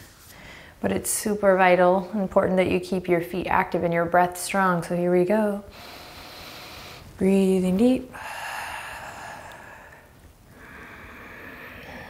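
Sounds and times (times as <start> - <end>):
woman breathing in deeply: 5.7 - 7.1, 8.1 - 12.0.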